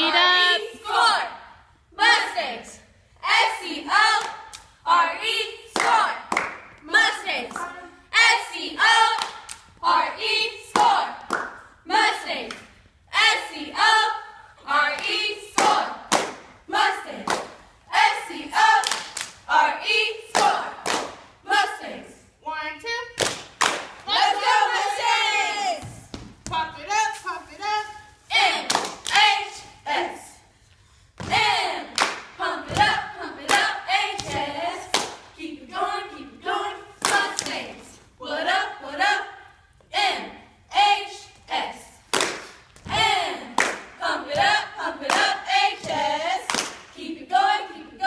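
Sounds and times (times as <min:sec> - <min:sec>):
cheerleaders chanting a cheer: 0:00.0 - 0:48.0
sharp hand claps: 0:05.8 - 0:06.7
group shouting a cheer: 0:24.1 - 0:26.0.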